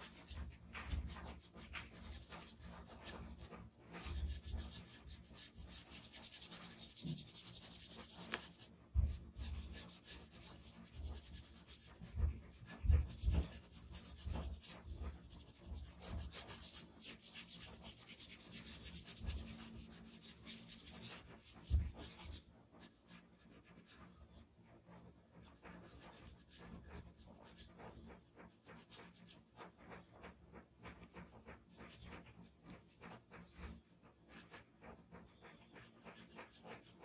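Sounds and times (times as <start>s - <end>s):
brush scraping on paper: 0.0s - 37.0s.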